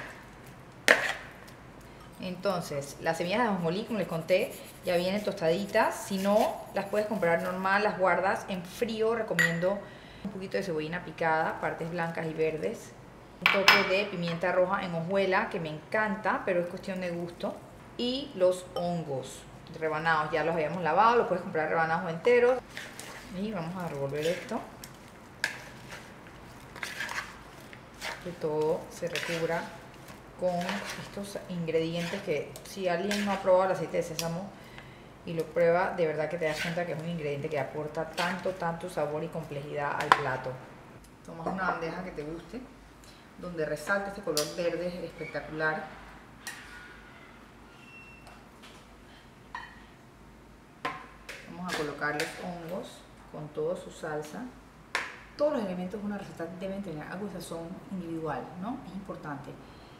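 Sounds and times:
wet rustle of vegetables tossed: 22.7s - 31.4s.

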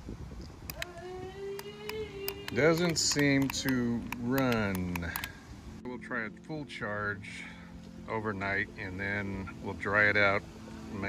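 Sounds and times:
remote control clicks: 0.7s - 0.9s, 1.6s - 5.3s.

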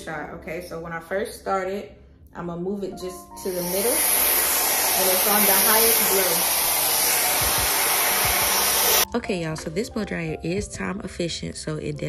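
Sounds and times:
hair dryer blowing air: 3.5s - 9.1s.

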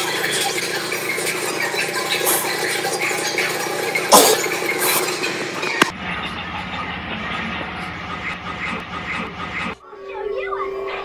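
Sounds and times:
cartoon soundtrack from television: 6.3s - 11.0s.

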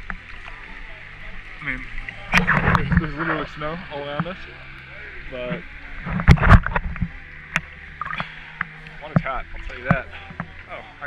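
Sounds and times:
water lapping and sloshing: 0.0s - 11.0s.

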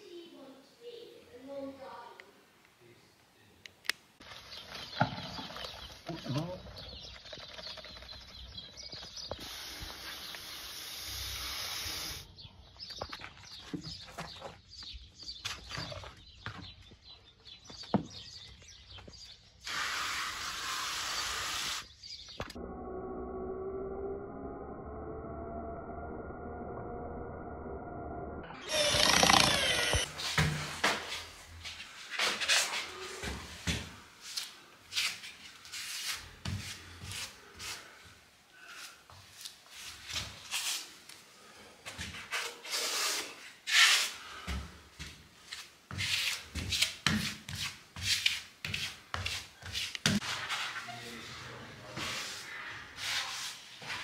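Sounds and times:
small birds chirping: 4.2s - 22.6s, 28.6s - 30.1s
steady hiss: 9.4s - 12.3s.

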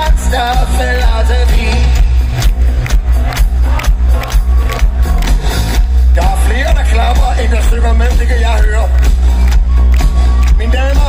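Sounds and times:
person singing: 0.0s - 2.3s
steady drum beat: 0.0s - 11.0s.

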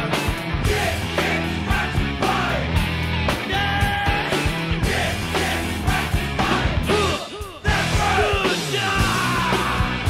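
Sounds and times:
punk rock song: 0.0s - 10.0s
steady drum beat: 0.0s - 10.0s
yelled vocals: 0.0s - 10.0s.

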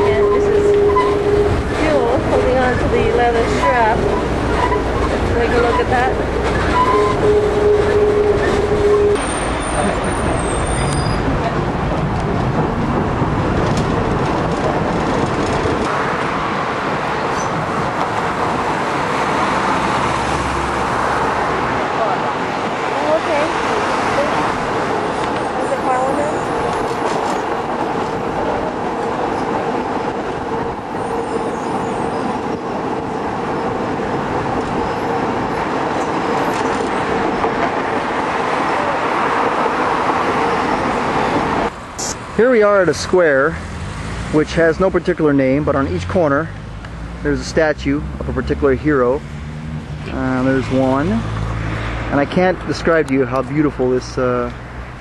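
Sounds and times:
passengers' voices: 0.0s - 15.8s, 21.8s - 31.0s, 34.5s - 42.2s
transit vehicle rumble and rattle: 0.0s - 55.0s.

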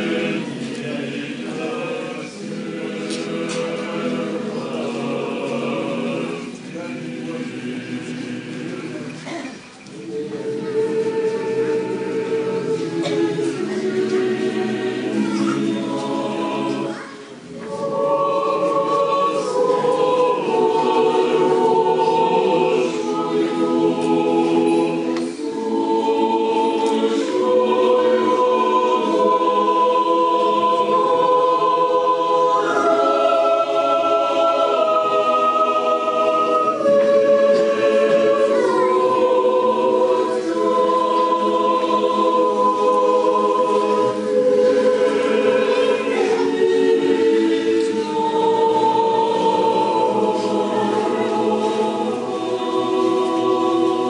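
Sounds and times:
choir singing a cappella hymn: 0.0s - 54.0s.

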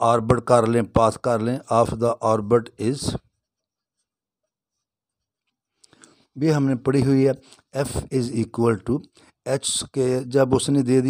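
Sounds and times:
person speaking: 0.0s - 3.6s, 5.9s - 11.0s.

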